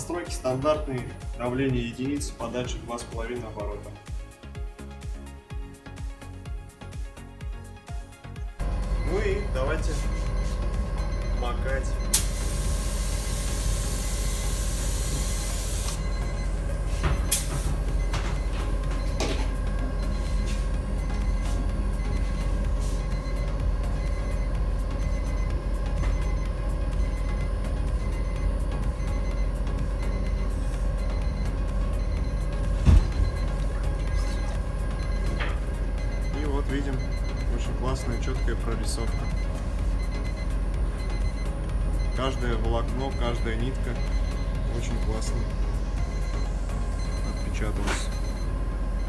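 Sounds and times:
workshop hum: 0.0 - 49.0
spray gun hissing: 12.1 - 16.0.

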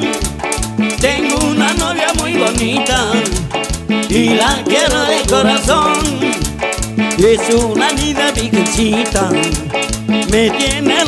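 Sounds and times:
live band playing cumbia: 0.0 - 11.0
shaker rattling on the beat: 0.0 - 11.0.

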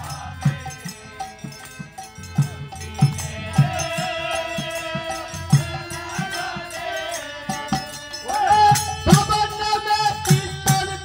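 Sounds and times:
harmonium chords: 0.0 - 11.0.

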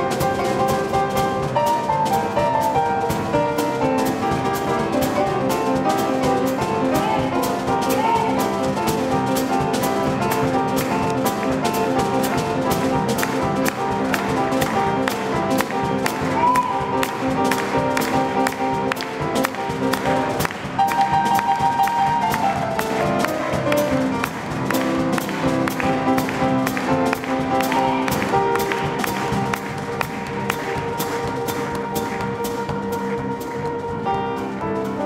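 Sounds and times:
jazz band playing: 0.0 - 35.0.

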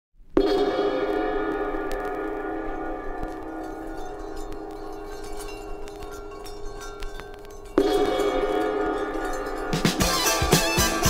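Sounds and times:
gong ringing: 0.4 - 11.0
faint chime tinkles: 0.5 - 10.8.

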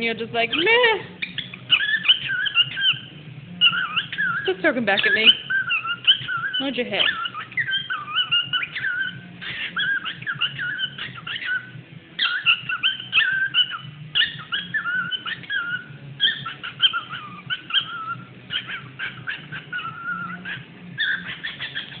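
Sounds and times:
cockatiel chattering and warbling: 0.5 - 22.0.

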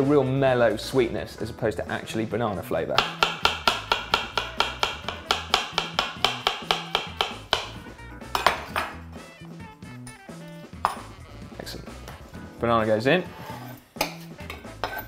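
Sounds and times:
knife chopping on wooden board: 3.0 - 8.9.

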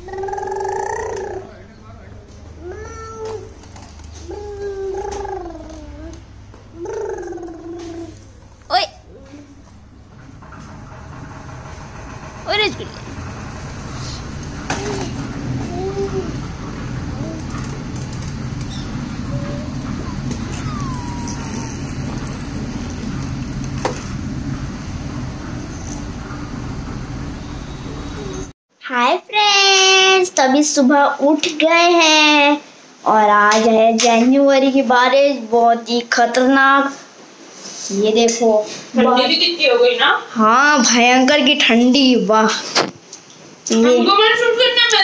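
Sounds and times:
baby crying: 19.3 - 22.9.

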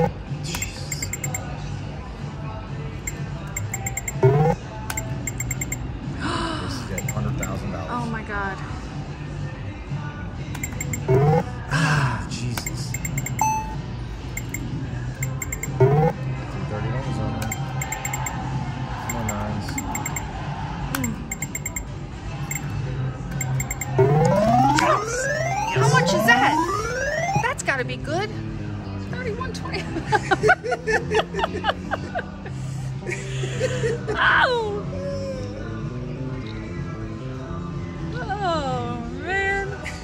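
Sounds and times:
short electronic ticks: 0.0 - 1.4, 3.1 - 5.8, 7.0 - 7.4, 10.6 - 11.4, 12.6 - 13.7, 14.4 - 16.1, 17.4 - 18.4, 19.1 - 20.3, 21.0 - 21.9, 23.3 - 24.9
casino background music: 0.0 - 8.7, 9.3 - 27.8.

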